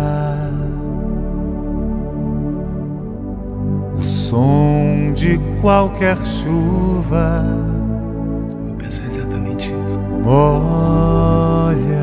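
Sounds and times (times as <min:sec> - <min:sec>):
low sustained accompaniment: 0:00.0 - 0:12.0.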